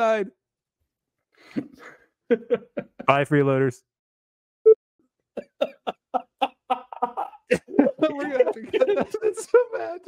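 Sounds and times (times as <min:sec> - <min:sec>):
man laughing: 0:01.5 - 0:03.2, 0:05.4 - 0:10.0.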